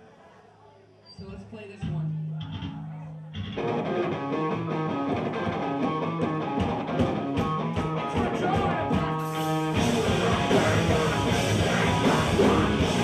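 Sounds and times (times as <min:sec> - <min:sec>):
electric guitar riff: 0:02.2 - 0:13.0
rock band playing: 0:02.2 - 0:13.0.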